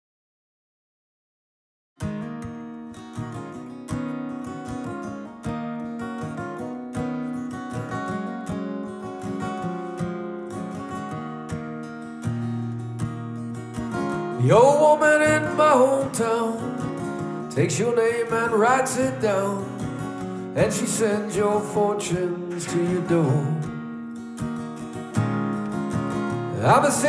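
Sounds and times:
acoustic guitar strumming chords: 2.0s - 27.0s.

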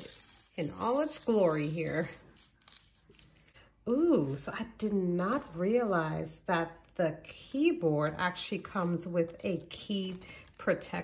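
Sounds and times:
plastic film crinkling: 0.0s - 3.6s.

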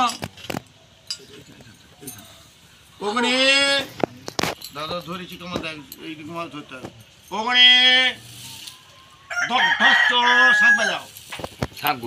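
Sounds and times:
sharp metallic clinks: 0.0s - 2.8s, 4.1s - 9.0s, 11.1s - 12.0s.

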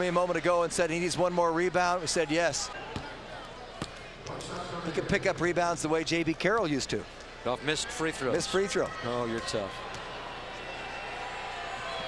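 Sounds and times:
faint arena background noise: 0.0s - 12.0s.

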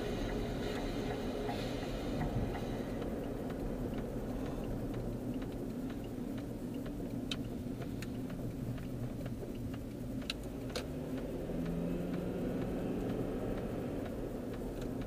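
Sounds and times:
car engine: 0.0s - 15.0s
road noise inside moving car: 0.0s - 15.0s
steady hum: 0.0s - 15.0s
light ticks and clicks: 0.1s - 15.0s.

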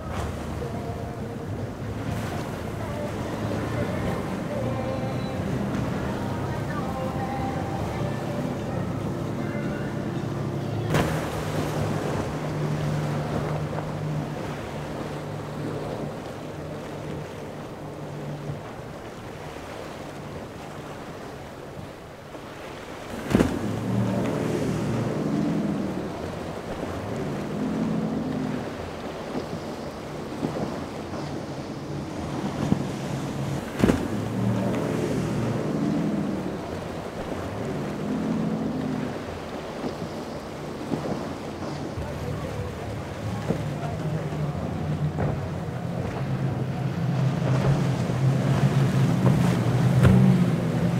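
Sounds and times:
outboard engines at speed: 0.0s - 50.9s.

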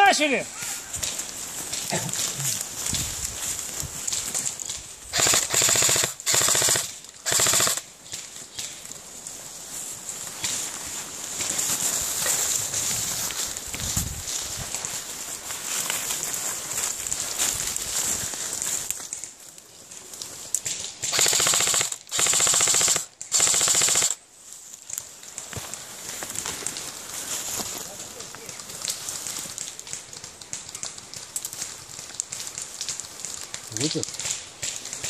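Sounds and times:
airsoft rifle full-auto bursts: 5.1s - 7.8s, 21.1s - 24.2s.

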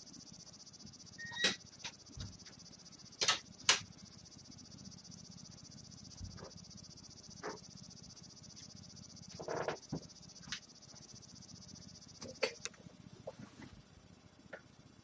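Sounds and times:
steady high-pitched hiss: 0.0s - 15.0s.

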